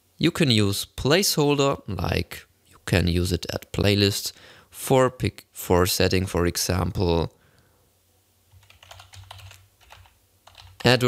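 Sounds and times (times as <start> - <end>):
keyboard typing: 8.5 - 11.0.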